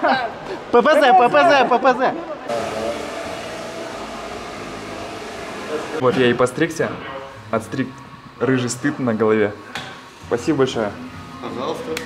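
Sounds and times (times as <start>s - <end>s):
hair dryer blowing: 2.5s - 6.0s.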